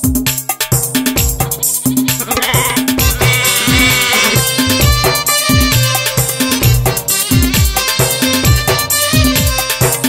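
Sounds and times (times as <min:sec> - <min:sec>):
wavering reed instrument note: 0:02.2 - 0:04.5.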